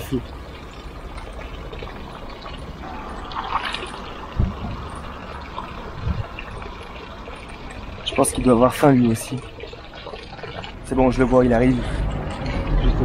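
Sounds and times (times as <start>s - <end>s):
fountain water trickling into basin: 0.0s - 13.0s
dull low thumps: 4.3s - 5.2s, 5.8s - 6.5s.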